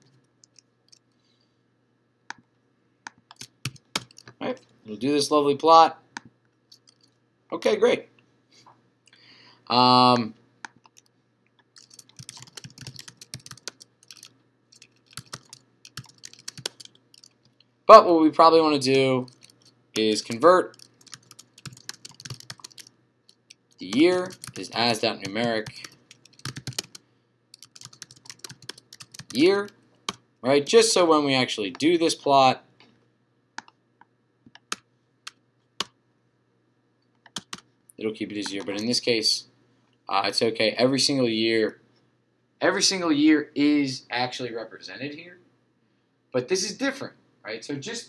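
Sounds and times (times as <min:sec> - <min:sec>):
typing on computer keyboard: 0:03.1 - 0:04.4, 0:10.7 - 0:17.4, 0:19.3 - 0:29.5, 0:37.2 - 0:37.7
computer keyboard key clicks: 0:37.3 - 0:37.6.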